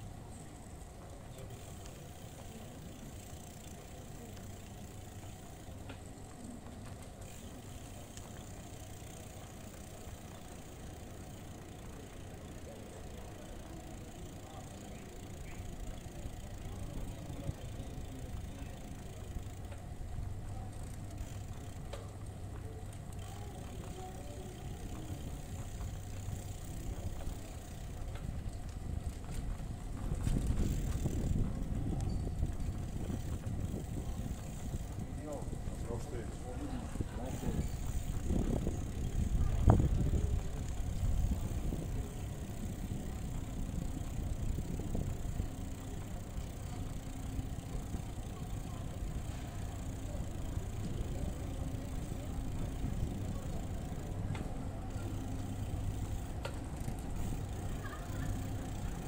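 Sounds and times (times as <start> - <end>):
bicycle rolling over stone paving: 0.0 - 59.0.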